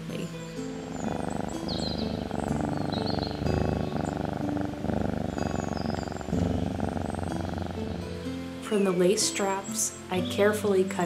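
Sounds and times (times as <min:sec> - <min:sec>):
cat purring: 0:00.0 - 0:10.6.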